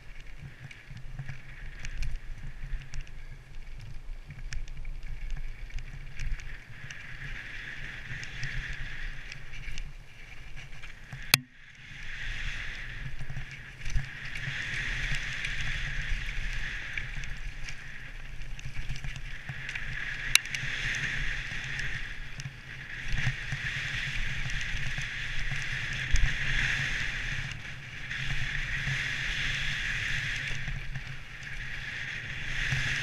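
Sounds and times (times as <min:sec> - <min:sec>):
mountain bike rattling over dirt: 0:00.0 - 0:33.0
wind rumble on microphone: 0:00.0 - 0:33.0.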